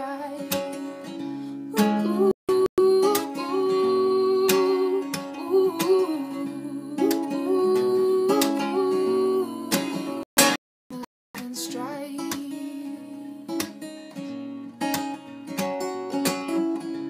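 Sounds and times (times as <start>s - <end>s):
woman singing: 0.0s - 1.1s, 1.7s - 10.2s, 10.9s - 13.9s
acoustic guitar strumming: 0.0s - 10.6s, 11.4s - 17.0s.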